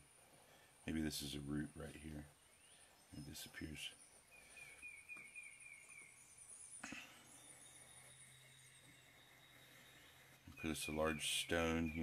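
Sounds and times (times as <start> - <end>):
faint high wavering trills: 0.0 - 12.0.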